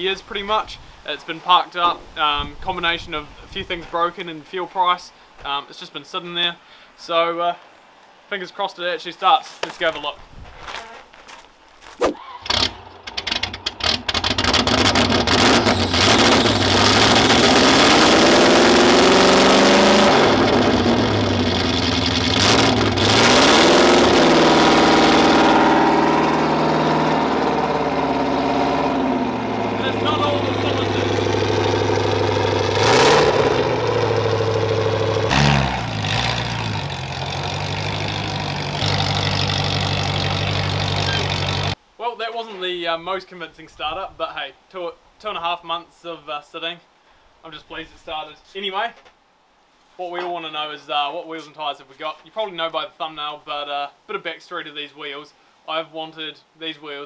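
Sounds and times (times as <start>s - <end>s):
car engine cranking and revving: 12.4s - 41.8s.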